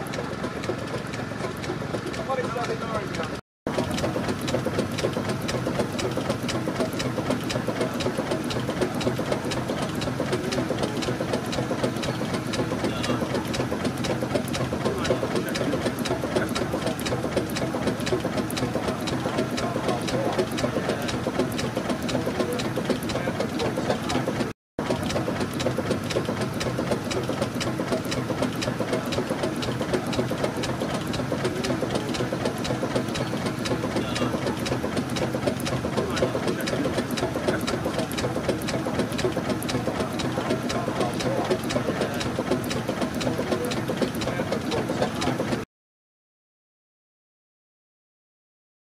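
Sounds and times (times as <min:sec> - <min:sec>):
steam engine mechanical clatter: 0:00.0 - 0:45.6.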